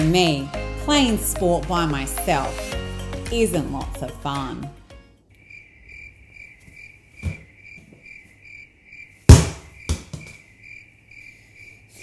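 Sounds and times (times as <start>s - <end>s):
cricket chirping: 5.3s - 12.0s
thumps: 9.3s - 10.4s.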